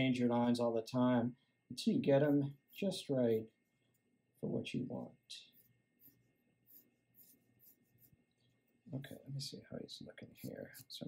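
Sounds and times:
pencil sketching on paper: 0:02.2 - 0:04.6, 0:05.4 - 0:08.8, 0:10.2 - 0:11.0.

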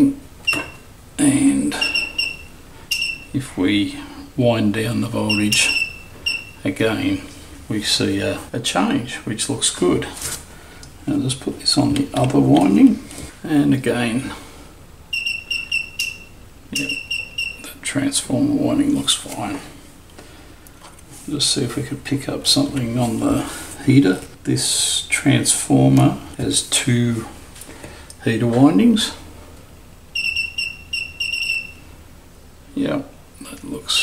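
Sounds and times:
faint mains hum: 0:00.0 - 0:34.0
rapid high-pitched electronic beeps: 0:15.1 - 0:17.6.

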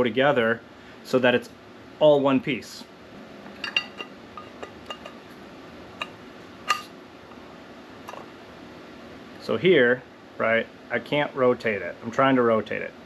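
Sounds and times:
metal part clinking and tapping: 0:03.6 - 0:05.2, 0:06.0 - 0:06.9.

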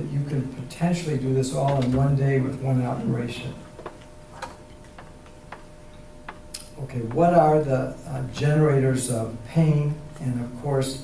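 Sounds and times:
man speaking: 0:00.0 - 0:03.6, 0:06.8 - 0:11.0.

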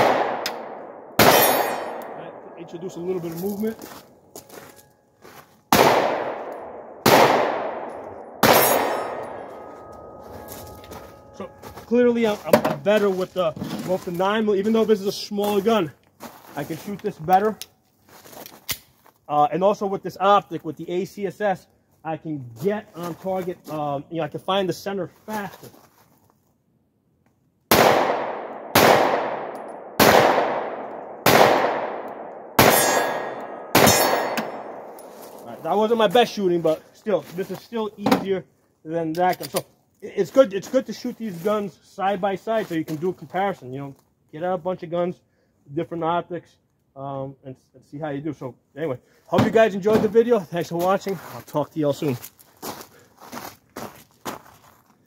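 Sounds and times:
pistol shots echoing: 0:00.0 - 0:02.8, 0:05.7 - 0:10.2, 0:27.7 - 0:35.1.

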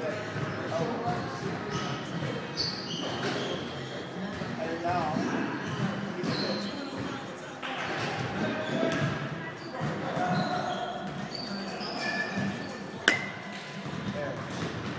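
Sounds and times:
murmur of voices: 0:00.0 - 0:14.9
baseball bat striking ball: 0:13.0 - 0:13.5.

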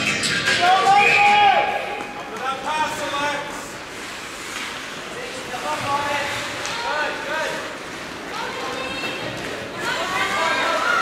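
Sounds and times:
voices shouting and calling out: 0:00.5 - 0:03.7, 0:05.2 - 0:11.0.

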